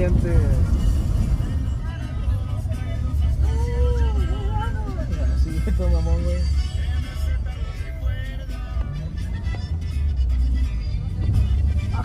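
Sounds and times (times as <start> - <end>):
car stereo music with heavy bass: 0.0 - 12.0
moving vehicle rumble: 0.0 - 12.0.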